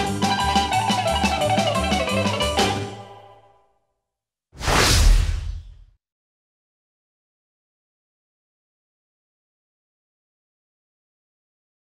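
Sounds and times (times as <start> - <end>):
music: 0.0 - 4.1
whoosh transition effect: 4.6 - 5.9.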